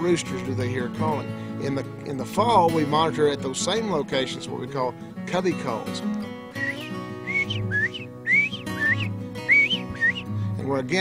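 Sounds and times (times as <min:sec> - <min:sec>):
quail whistled calls: 0:06.6 - 0:10.3.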